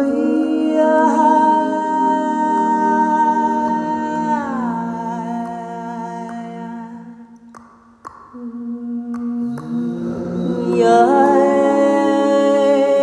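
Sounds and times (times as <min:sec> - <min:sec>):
a cappella humming voices: 0:00.0 - 0:13.0.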